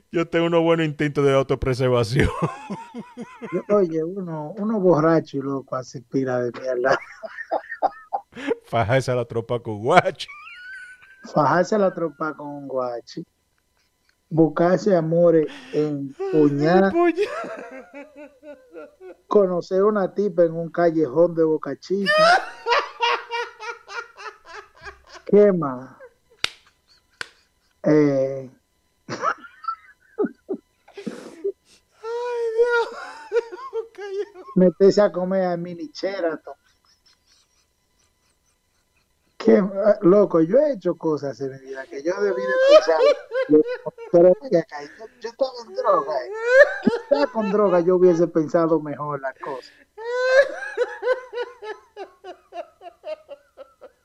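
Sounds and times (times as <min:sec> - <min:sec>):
man laughing hard: 0:02.2 - 0:03.8, 0:06.6 - 0:08.7, 0:10.3 - 0:11.9, 0:15.5 - 0:19.3, 0:22.0 - 0:25.3, 0:29.1 - 0:34.8, 0:36.2 - 0:39.1, 0:41.7 - 0:48.6, 0:49.3 - 0:54.0.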